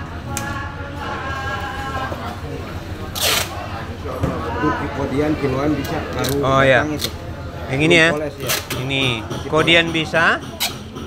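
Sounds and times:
indistinct voices: 0.0 - 11.0
market background noise: 0.0 - 11.0.

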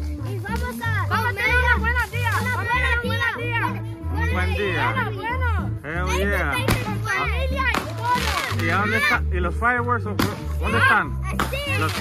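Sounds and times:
children talking and shouting: 0.0 - 12.0
music with steady bass line: 0.0 - 12.0.

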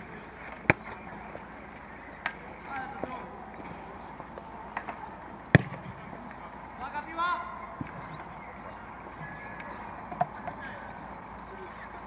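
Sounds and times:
ball being kicked: 0.6 - 1.0, 5.5 - 6.0.

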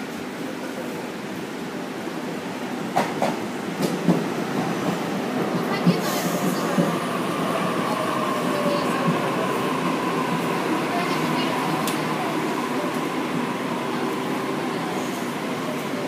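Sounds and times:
train high whine: 0.0 - 16.0
train rolling rumble: 0.0 - 16.0.

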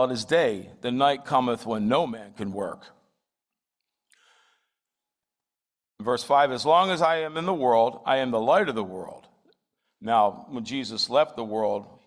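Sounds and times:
man breathing faintly: 4.1 - 4.8.

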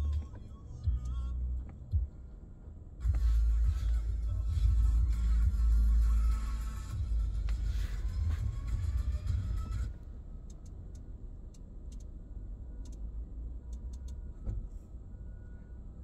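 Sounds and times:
bass-heavy video soundtrack: 0.0 - 2.3, 3.0 - 11.1
low cabin rumble: 0.0 - 16.0.

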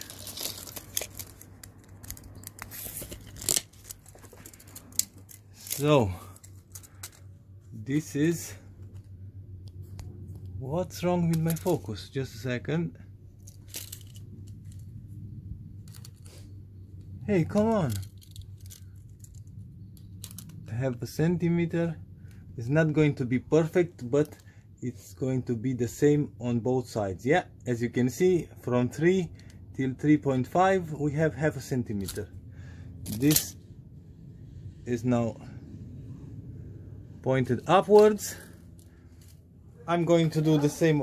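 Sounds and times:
tape measure clicks and rattles: 0.0 - 7.2
scratching and rustling handling noise: 0.0 - 12.4, 13.1 - 21.2, 30.4 - 32.3, 33.0 - 35.0, 37.0 - 41.0
low steady hum: 0.0 - 41.0.

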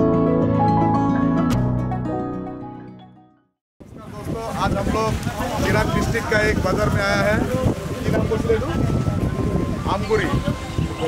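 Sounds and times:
wind buffeting microphone: 3.8 - 11.0.

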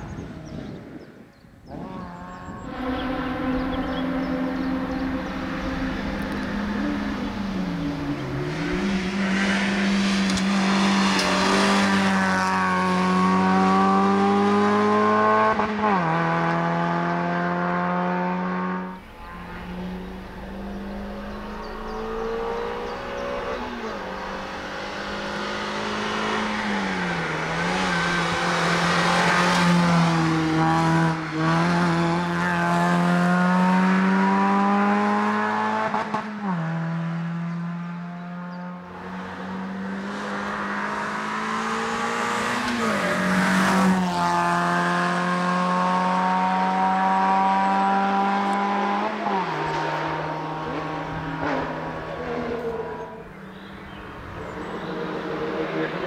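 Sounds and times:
car engine revving: 1.6 - 56.0.

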